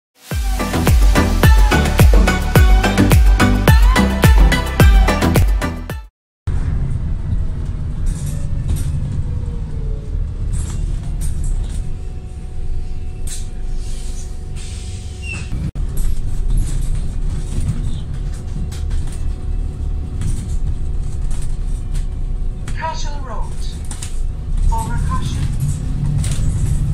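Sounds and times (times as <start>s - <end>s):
bus diesel engine rumble: 6.5s - 26.9s.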